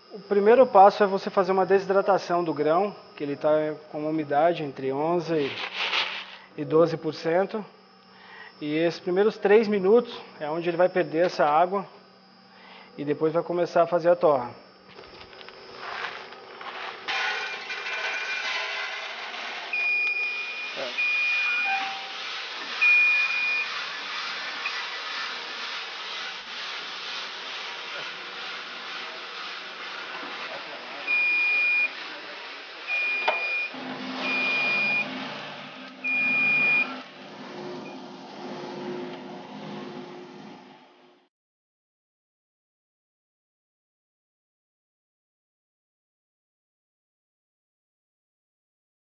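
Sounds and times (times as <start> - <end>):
coffee roaster drum whirring: 0.0 - 41.3
short high electronic beeps: 19.7 - 22.1, 36.1 - 37.0.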